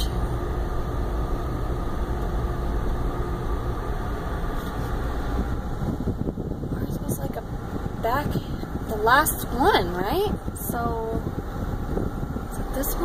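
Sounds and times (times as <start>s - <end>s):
car engine and tyres rumbling: 0.0s - 13.0s
faint steady hum: 0.0s - 13.0s.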